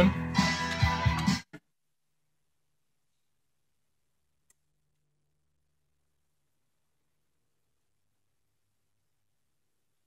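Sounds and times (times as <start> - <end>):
guitar music from a record: 0.0 - 1.6.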